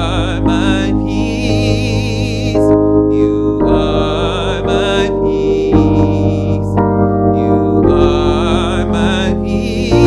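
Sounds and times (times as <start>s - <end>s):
electric keyboard chords: 0.0s - 10.0s
man singing with vibrato: 0.0s - 10.0s.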